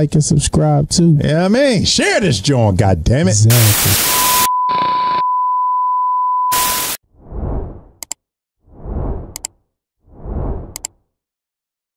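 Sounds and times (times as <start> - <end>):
bursts of static: 3.4 - 5.2, 6.5 - 7.0
steady test-tone beep: 3.9 - 7.0.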